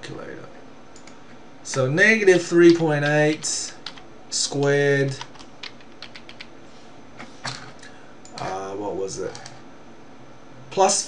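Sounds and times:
keyboard typing: 2.6 - 4.0, 5.2 - 6.5.

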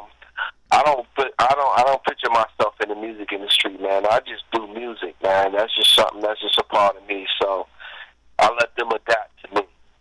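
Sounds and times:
person talking over telephone: 0.0 - 9.8.

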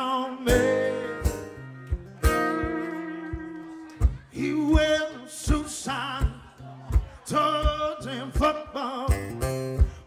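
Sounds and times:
men singing: 0.0 - 1.3
strummed acoustic guitars: 0.0 - 10.0.

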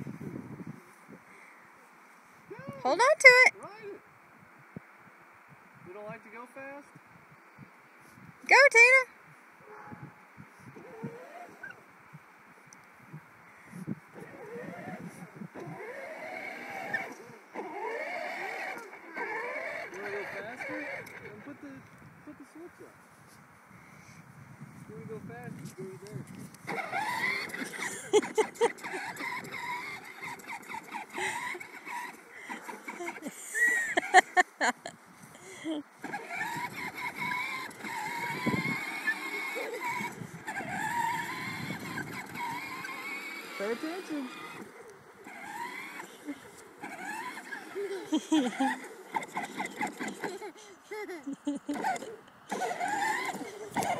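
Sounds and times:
electric motor and plastic wheels: 10.8 - 11.8, 14.1 - 21.6, 25.6 - 34.4, 36.0 - 53.9.

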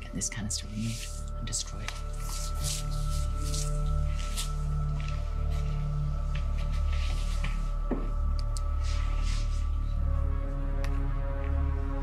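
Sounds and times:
suspenseful drone music: 0.0 - 12.0.

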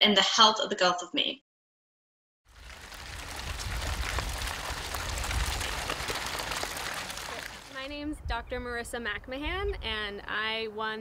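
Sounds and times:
steady outdoor rush: 2.8 - 8.6.

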